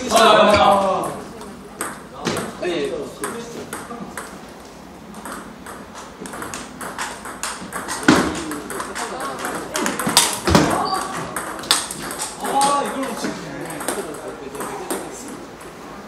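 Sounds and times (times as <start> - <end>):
table tennis ball clicking: 5.1 - 15.7.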